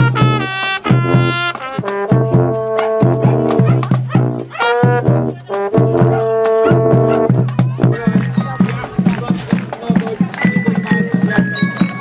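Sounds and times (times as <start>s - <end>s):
brass playing: 0.0s - 12.0s.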